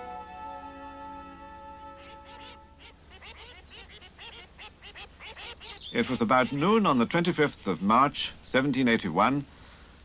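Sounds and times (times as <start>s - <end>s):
held music chord: 0.0s - 2.8s
ducks quacking: 1.4s - 7.5s.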